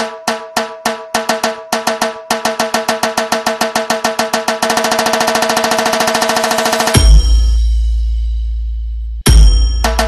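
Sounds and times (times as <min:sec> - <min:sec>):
drum beaten with sticks: 0:00.0 - 0:05.6, 0:06.3 - 0:07.9, 0:09.3 - 0:10.0.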